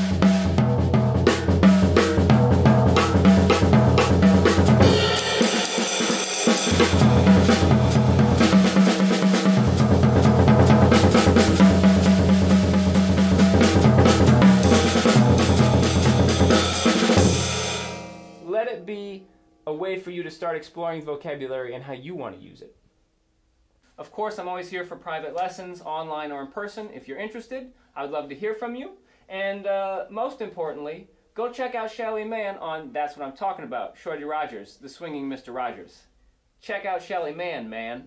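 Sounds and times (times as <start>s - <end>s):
jazz drum kit playing: 0.0s - 18.6s
cymbal wash: 4.8s - 10.4s.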